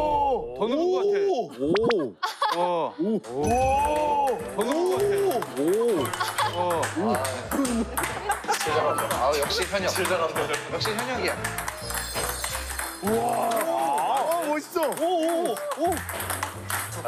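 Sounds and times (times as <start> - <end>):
ping-pong ball clicking: 4.6 - 9.2, 9.9 - 17.0
people going ooh: 13.0 - 14.5.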